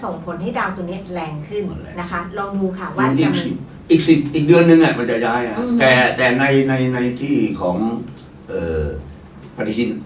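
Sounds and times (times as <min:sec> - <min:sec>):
man saying uhh: 0:03.0 - 0:03.6, 0:05.4 - 0:06.2, 0:08.5 - 0:09.1
man speaking: 0:03.0 - 0:10.0.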